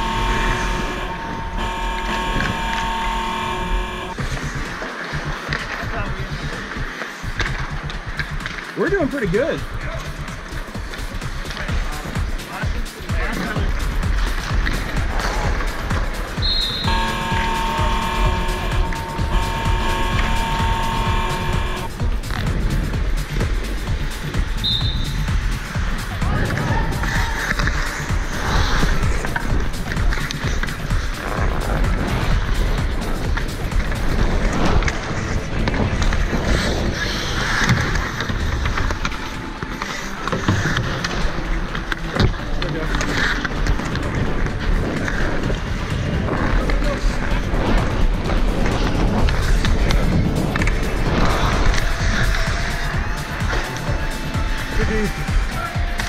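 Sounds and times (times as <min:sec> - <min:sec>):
high whistle blast: 0:00.0 - 0:04.2, 0:16.4 - 0:21.9, 0:24.6 - 0:25.2
skates scraping ice: 0:04.2 - 0:56.0.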